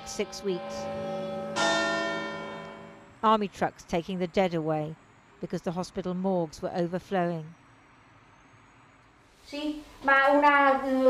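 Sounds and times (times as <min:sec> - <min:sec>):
tower bell ringing: 0:00.0 - 0:03.2.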